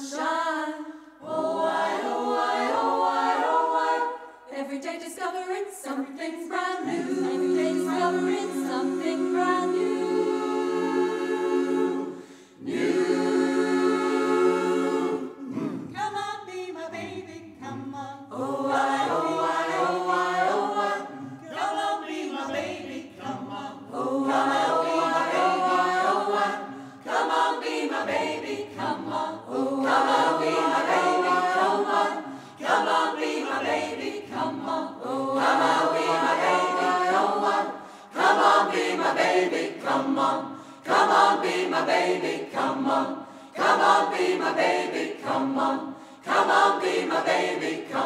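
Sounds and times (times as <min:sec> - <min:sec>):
choir singing a cappella: 0:00.0 - 0:48.0.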